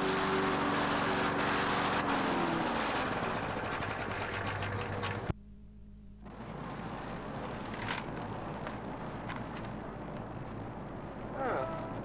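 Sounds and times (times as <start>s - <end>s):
lawn mower engine running: 0.0s - 5.3s.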